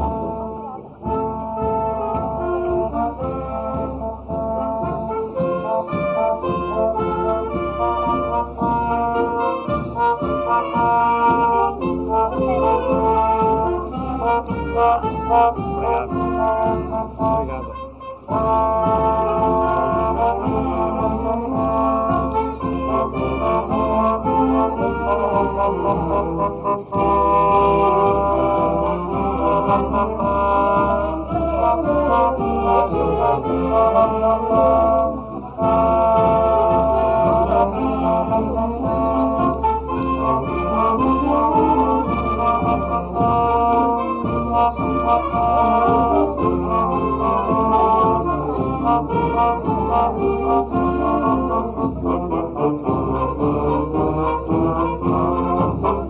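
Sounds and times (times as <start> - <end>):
wind band playing: 0.0 - 56.0.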